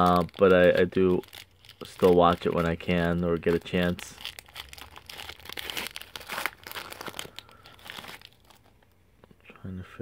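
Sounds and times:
foil wrapper crinkling and tearing: 0.0s - 9.0s.

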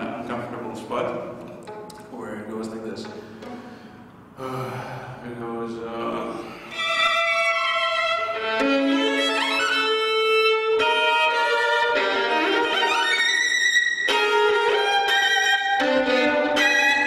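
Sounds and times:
solo violin playing: 1.6s - 4.2s, 6.7s - 17.0s.

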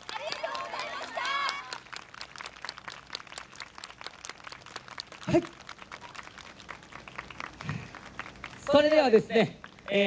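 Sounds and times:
scattered claps: 0.0s - 10.0s.

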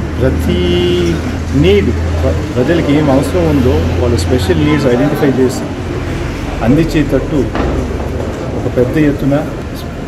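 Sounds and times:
man speaking: 0.1s - 5.9s, 6.5s - 7.6s, 8.6s - 10.0s.

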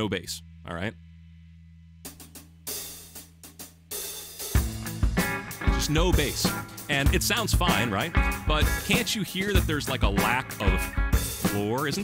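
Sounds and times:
low electrical hum: 0.0s - 3.4s
drums with hi-hat and cymbals: 2.0s - 12.0s
blues backing track: 2.1s - 12.0s.

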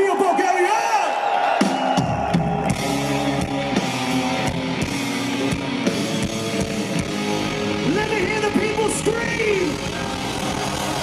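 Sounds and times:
bass guitar: 2.3s - 11.0s
electric guitar chords: 2.6s - 11.0s.

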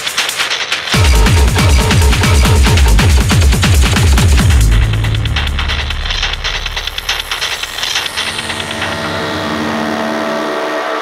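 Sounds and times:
industrial techno kick and bass: 0.0s - 10.2s
high percussion: 0.0s - 11.0s
grainy synth chord: 8.1s - 11.0s.

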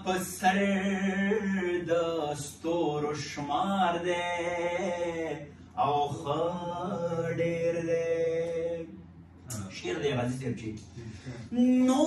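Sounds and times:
man singing unaccompanied: 0.0s - 9.0s.

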